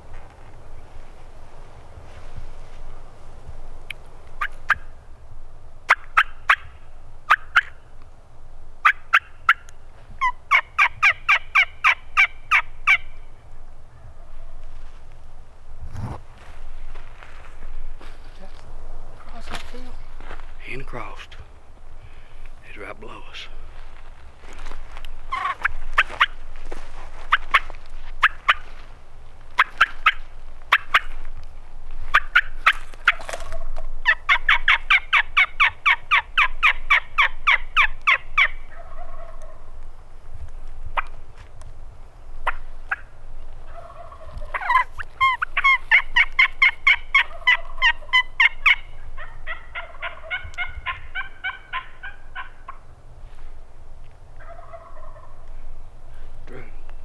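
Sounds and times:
turkey calls: 4.3s - 5.0s, 5.8s - 7.9s, 8.8s - 14.9s, 22.0s - 28.9s, 29.5s - 31.3s, 32.0s - 39.8s, 42.4s - 52.9s, 54.3s - 57.0s.

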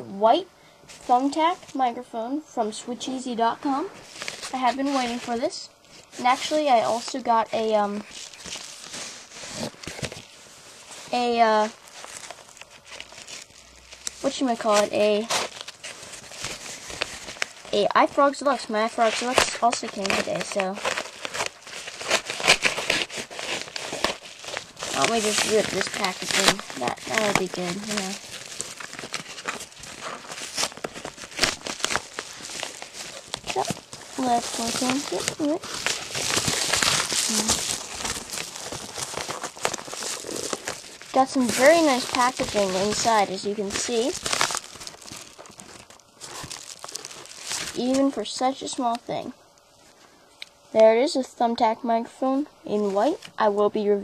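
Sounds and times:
packaging crinkling and tearing: 4.0s - 49.0s.

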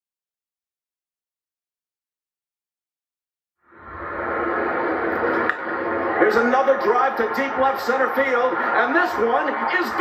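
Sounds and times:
ballpark crowd noise: 3.9s - 10.0s.

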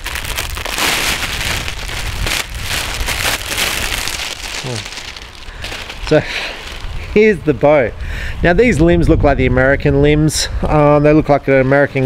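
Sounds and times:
plastic wrapping crinkling: 0.0s - 7.1s.

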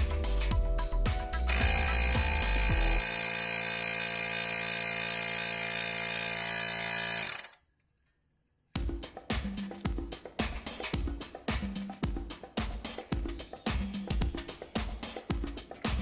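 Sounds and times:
background music: 0.0s - 3.0s, 8.8s - 16.0s
electric tyre inflator running: 1.5s - 7.6s.

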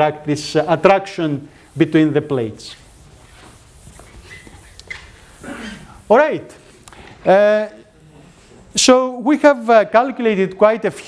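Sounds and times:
eraser rubbing on chalkboard: 0.0s - 6.8s
faint squeaks: 4.2s - 5.3s.

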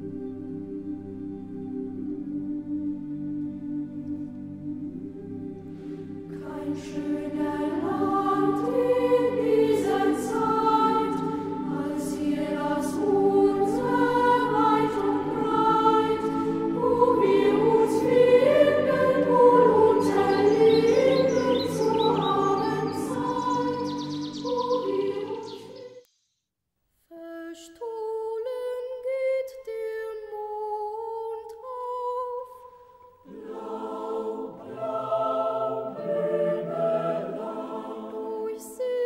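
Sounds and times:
choir singing: 0.0s - 26.0s, 27.5s - 39.0s.

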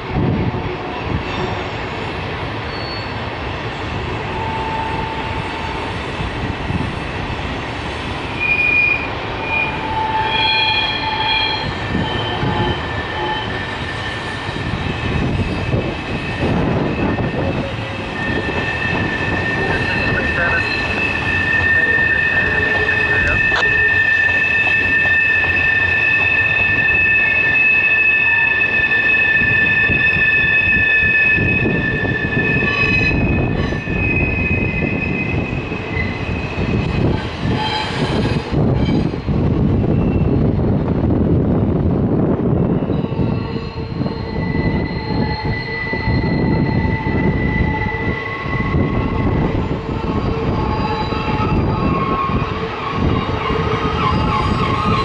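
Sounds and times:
steel wheels squealing on rails: 1.0s - 2.0s, 2.6s - 6.8s, 8.2s - 40.6s, 42.6s - 55.0s.

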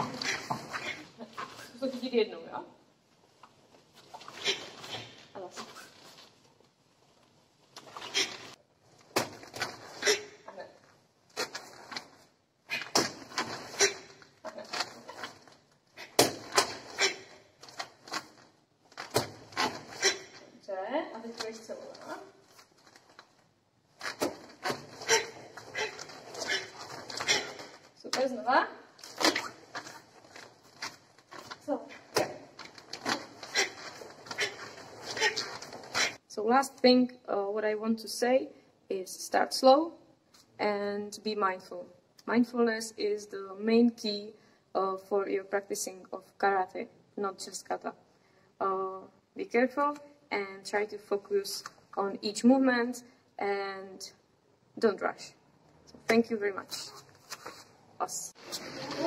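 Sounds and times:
bare feet on mat: 0.0s - 2.0s, 21.2s - 28.4s, 29.0s - 36.2s, 56.7s - 59.0s.

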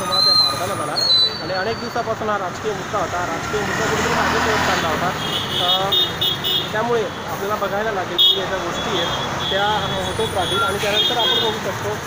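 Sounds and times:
people talking: 0.0s - 6.0s, 6.8s - 12.0s
city street traffic: 0.0s - 12.0s.

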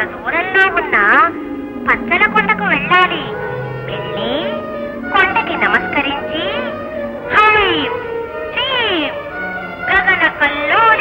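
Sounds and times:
sustained musical drone: 0.0s - 11.0s
drawn-out vocal cries: 0.4s - 8.6s.

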